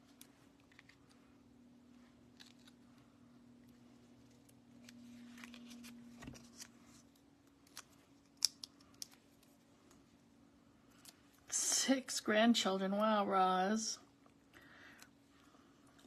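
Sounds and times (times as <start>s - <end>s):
paper rustling: 4.1s - 7.8s.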